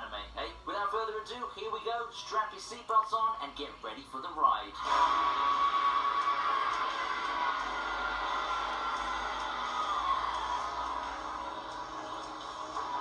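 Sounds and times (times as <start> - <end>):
dense rush of noise: 4.8 - 13.0
dramatic music: 4.8 - 13.0.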